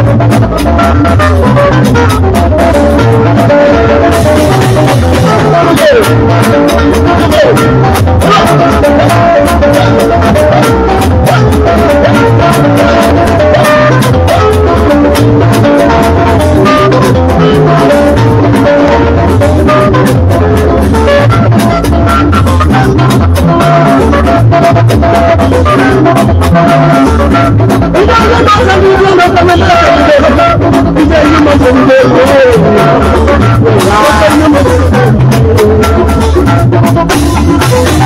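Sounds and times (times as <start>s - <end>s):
live band playing: 0.0s - 38.0s.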